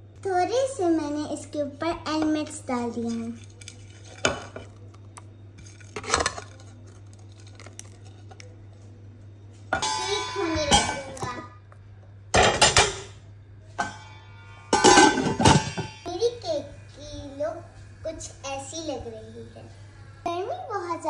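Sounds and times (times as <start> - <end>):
metal kitchenware clanking: 9.7 - 11.5, 12.3 - 16.2.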